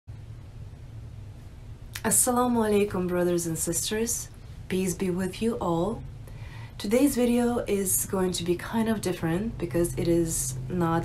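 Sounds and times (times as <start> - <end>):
low room hum: 0.1 - 11.0
woman's voice: 2.0 - 6.1, 6.8 - 11.0.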